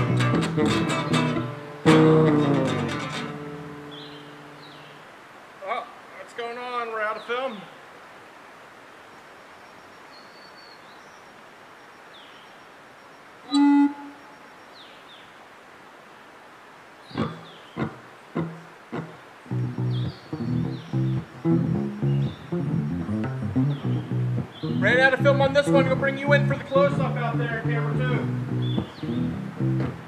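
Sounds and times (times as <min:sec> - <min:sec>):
plucked acoustic stringed instrument: 0:00.0 - 0:04.3, 0:17.2 - 0:30.0
faint woodland background: 0:00.0 - 0:30.0.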